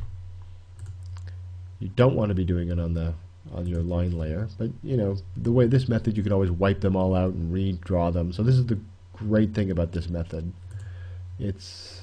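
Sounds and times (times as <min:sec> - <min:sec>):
steady low hum: 0:00.0 - 0:12.0
computer mouse clicks: 0:00.8 - 0:01.4, 0:10.6 - 0:11.0.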